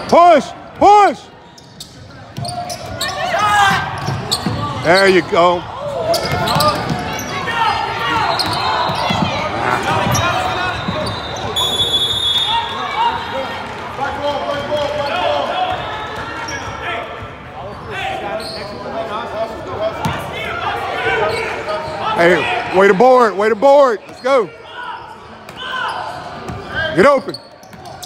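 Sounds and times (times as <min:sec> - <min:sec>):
players and spectators voices: 0:00.0 - 0:28.0
referee's whistle blast: 0:10.6 - 0:12.9.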